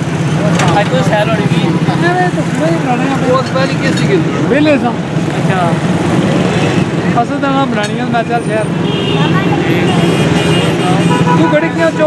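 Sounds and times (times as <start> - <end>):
people talking: 0.0 - 12.0
street traffic: 0.0 - 12.0.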